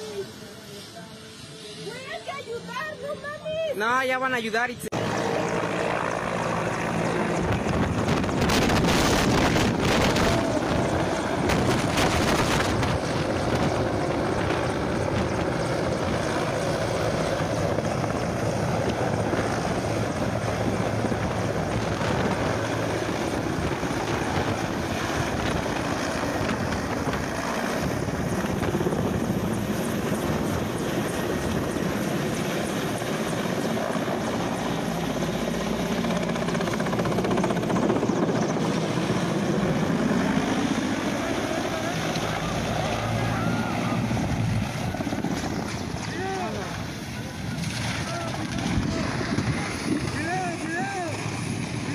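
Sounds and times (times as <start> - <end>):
helicopter rotor and engine noise: 0.0 - 51.9
wind buffeting microphone: 7.3 - 34.2, 43.7 - 51.9.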